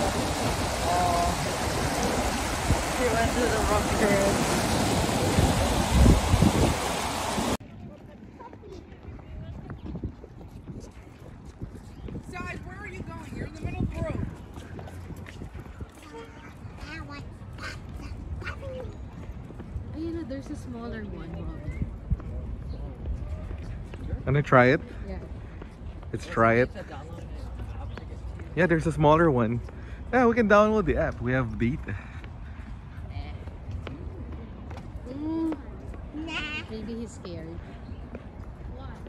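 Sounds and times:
whitewater rushing: 0:00.0 - 0:07.6
wind rumbling on microphone: 0:00.0 - 0:28.6.

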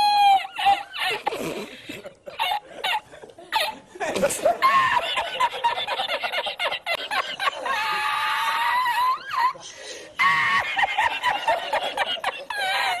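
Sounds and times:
man laughing hard: 0:00.0 - 0:13.0.

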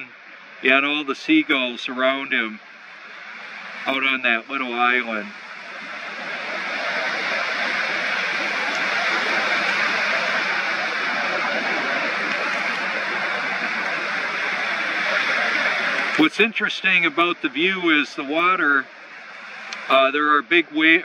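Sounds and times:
ocean surf breaking: 0:00.0 - 0:21.0.

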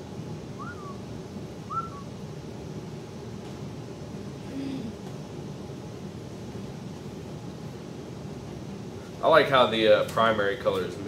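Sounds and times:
low room hum: 0:00.0 - 0:11.0
whistle-like note: 0:00.6 - 0:01.0, 0:01.7 - 0:02.1.

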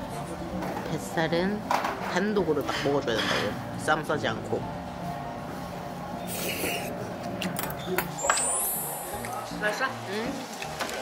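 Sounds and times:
chopsticks and dishes clinking: 0:02.6 - 0:03.6.

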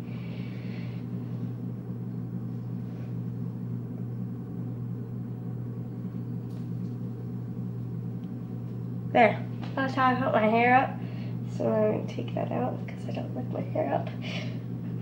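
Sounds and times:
machine humming: 0:00.0 - 0:15.0.

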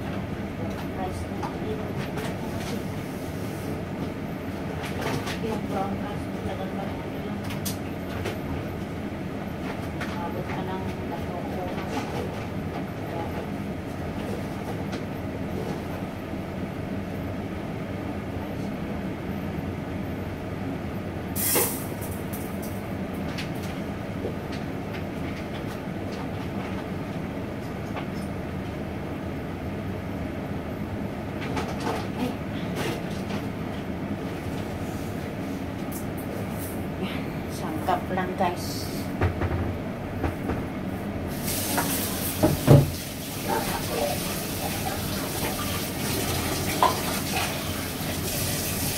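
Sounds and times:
gas stove burner hissing: 0:21.4 - 0:22.1, 0:41.3 - 0:46.9.

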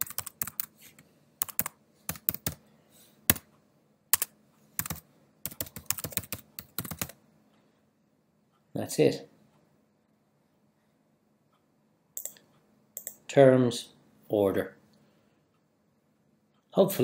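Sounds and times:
typing on computer keyboard: 0:00.0 - 0:00.7, 0:01.4 - 0:02.6, 0:04.1 - 0:07.2, 0:12.2 - 0:12.4, 0:13.0 - 0:13.2.

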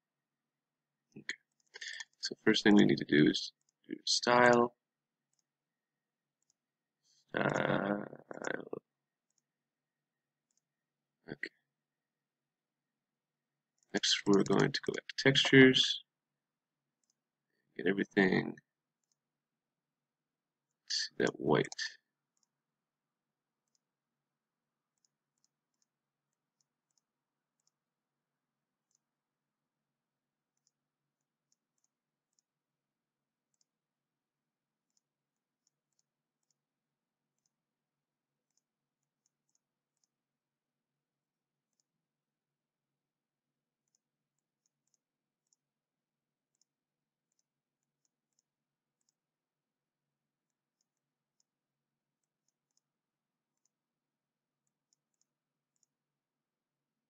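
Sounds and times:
faint computer mouse clicks: 0:27.6 - 0:27.8, 0:54.9 - 0:55.9.

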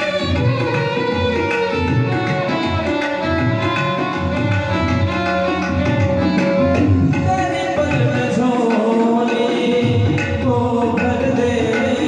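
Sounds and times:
violin playing devotional melody: 0:00.0 - 0:07.8
tabla rhythm: 0:00.0 - 0:12.0.

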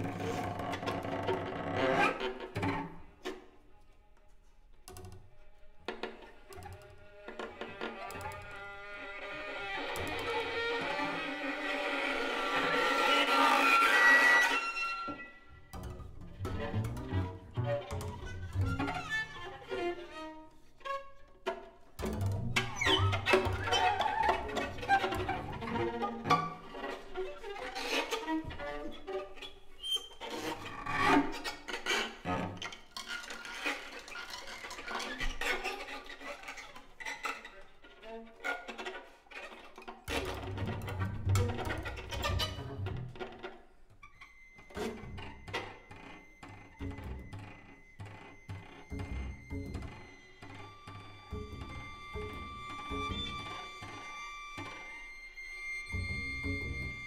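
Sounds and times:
low bowed double bass and cello: 0:00.0 - 0:57.0
short broken bow strokes: 0:38.6 - 0:57.0.

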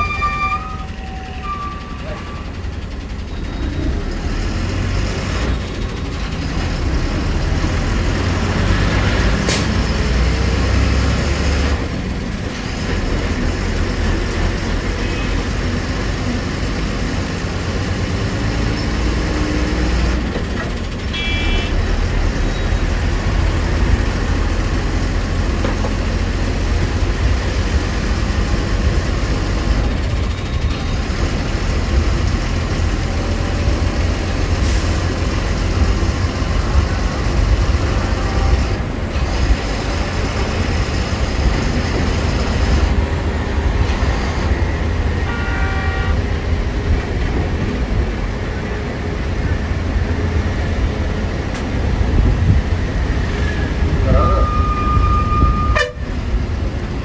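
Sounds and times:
short high beep: 0:00.0 - 0:02.5, 0:54.1 - 0:55.8
bus engine rumble and road noise: 0:00.0 - 0:57.0.

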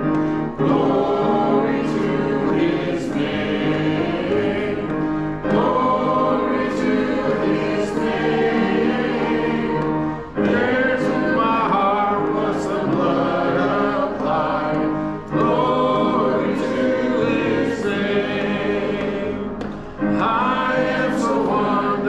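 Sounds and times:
congregation singing a hymn: 0:00.0 - 0:22.0.

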